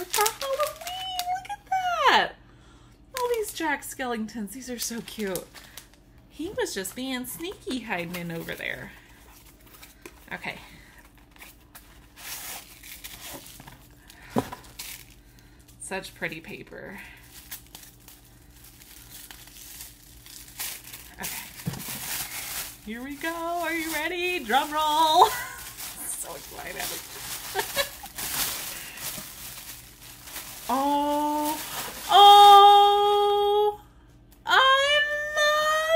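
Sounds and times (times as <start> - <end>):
wrapping paper crinkling: 0.0 - 1.8, 3.2 - 3.7, 4.7 - 6.1, 6.7 - 15.8, 17.1 - 32.8.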